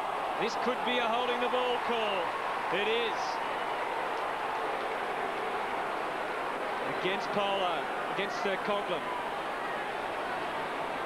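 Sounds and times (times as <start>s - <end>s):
stadium crowd roar: 0.0s - 11.0s.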